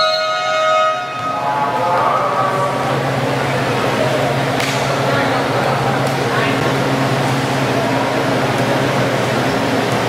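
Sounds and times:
steady hum: 0:00.0 - 0:10.0
crowd murmur: 0:01.2 - 0:10.0.

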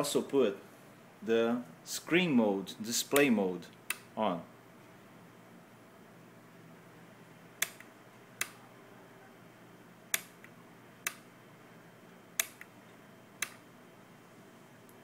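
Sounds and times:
toggle switch clicking: 0:07.6 - 0:08.6, 0:10.1 - 0:11.2, 0:12.4 - 0:12.7, 0:13.4 - 0:13.6.

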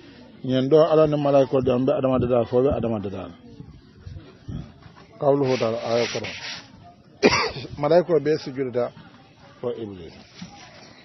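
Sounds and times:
rubbing rustling noise: 0:05.2 - 0:06.8.

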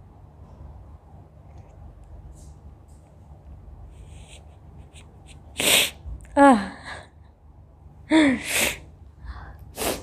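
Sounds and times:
sharp burst of breath: 0:08.4 - 0:10.0.

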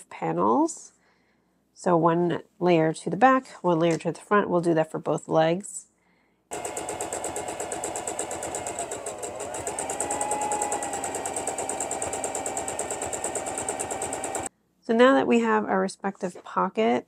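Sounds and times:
electric sewing machine stitching: 0:06.5 - 0:14.5.

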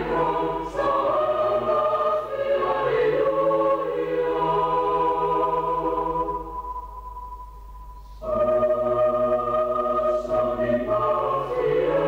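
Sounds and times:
choir holding a chord: 0:00.0 - 0:07.4, 0:08.0 - 0:12.0.

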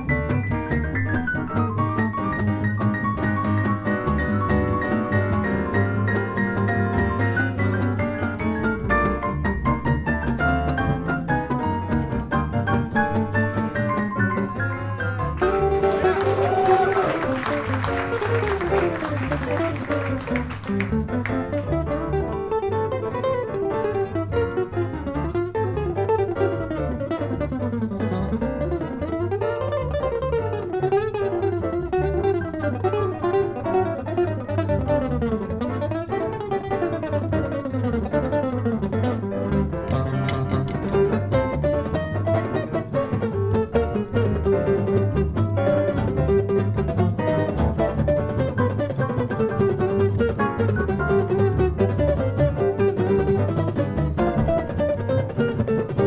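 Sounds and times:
jazz trio playing: 0:00.0 - 0:56.0.

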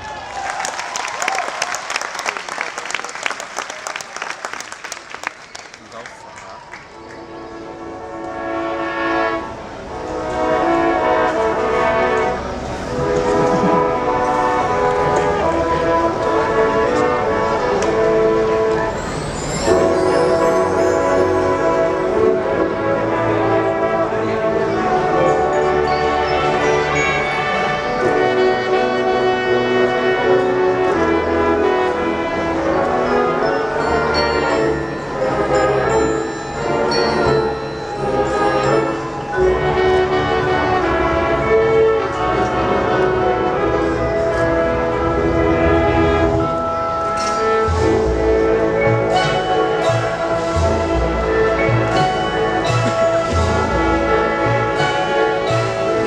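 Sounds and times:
brass band chord: 0:07.4 - 0:56.0.

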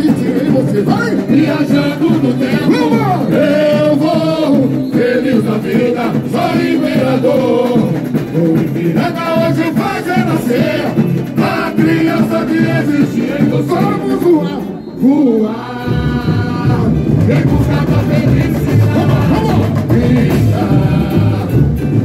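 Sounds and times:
group singing through microphones: 0:00.0 - 0:22.0
samba percussion music: 0:00.0 - 0:22.0.

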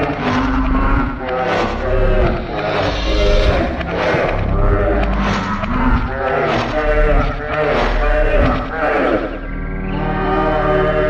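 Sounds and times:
warbling distorted singing voices: 0:00.0 - 0:11.0.

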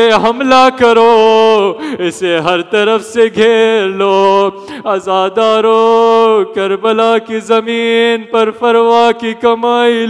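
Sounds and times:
man chanting mournful lament: 0:00.0 - 0:10.0.

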